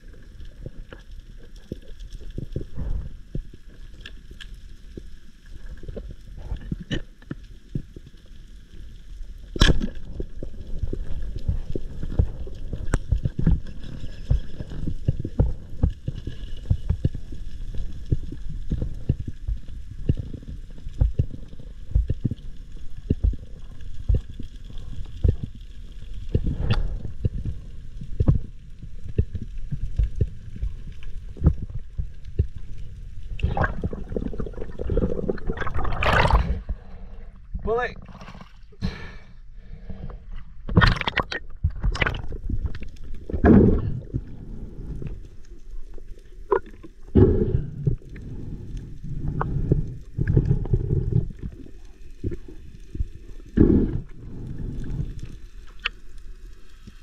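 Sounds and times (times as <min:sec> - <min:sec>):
water sloshing and gurgling: 0:00.0 - 0:38.8, 0:39.6 - 0:57.0.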